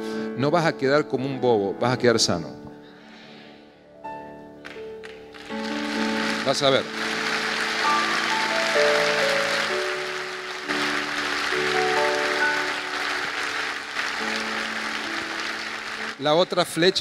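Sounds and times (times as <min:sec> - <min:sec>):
soft music of slow held chords: 0:00.0 - 0:17.0
congregation applauding: 0:04.6 - 0:17.0.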